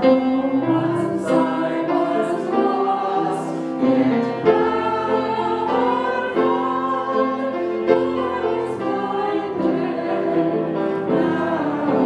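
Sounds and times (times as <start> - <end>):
instrumental accompaniment: 0.0 - 12.0
women singing a worship song: 0.2 - 12.0.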